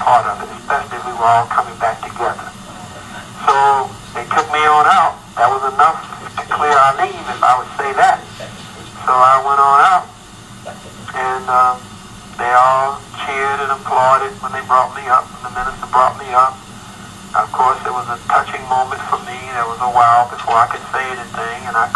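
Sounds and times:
person talking: 0:00.0 - 0:11.8, 0:12.4 - 0:16.6, 0:17.4 - 0:21.9.

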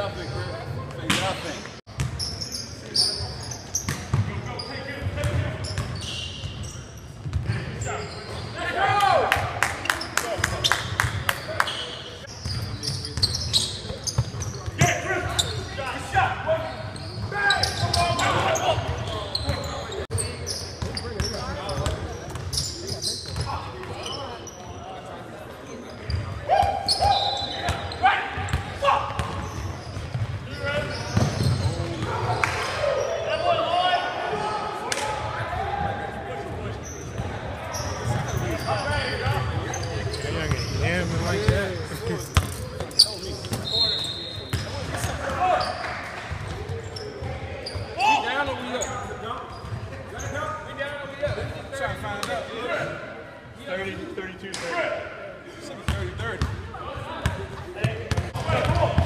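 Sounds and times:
players calling out: 0:30.5 - 0:46.0.

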